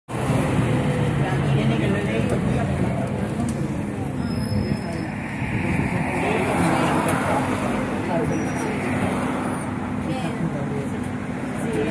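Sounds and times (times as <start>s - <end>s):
road traffic: 0.1s - 11.9s.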